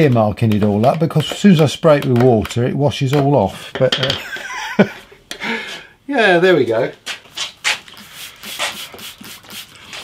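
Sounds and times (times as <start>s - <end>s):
spray bottle squirting: 7.7s - 10.0s.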